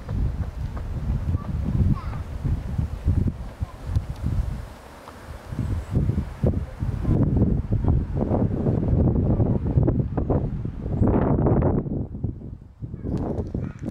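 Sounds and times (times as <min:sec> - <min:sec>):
wind buffeting microphone: 0:00.0 - 0:13.9.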